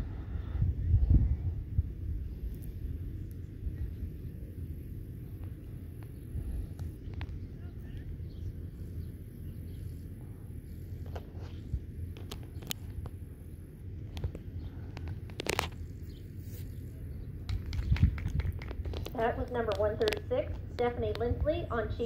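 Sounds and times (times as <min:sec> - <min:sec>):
wind rumbling on microphone: 0:00.0 - 0:22.0
faint clicks and ticks: 0:17.4 - 0:21.4.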